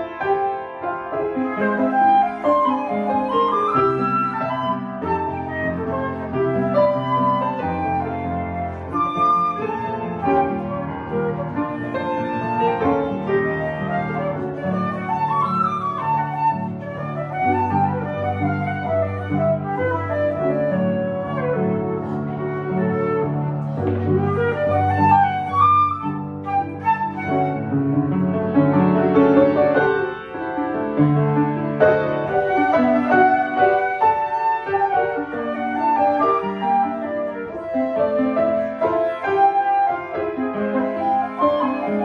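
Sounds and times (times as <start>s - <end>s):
piano accompaniment: 0.0s - 42.0s
flute melody: 0.1s - 42.0s.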